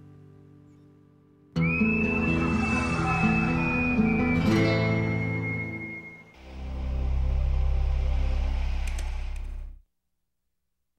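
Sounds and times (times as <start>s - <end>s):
music: 0.0s - 9.8s
low droning musical tone: 6.4s - 9.8s.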